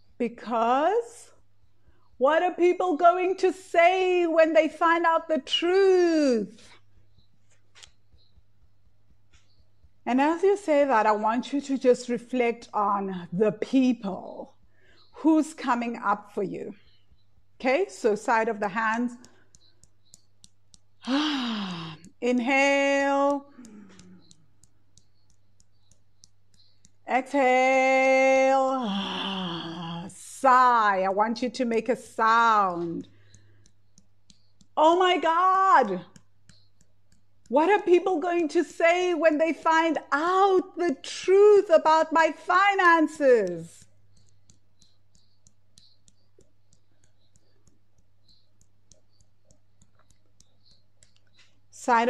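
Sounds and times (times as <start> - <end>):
hands tapping together: 7.1 - 10.7, 18.3 - 27.1, 32.6 - 38.5, 43.4 - 52.0.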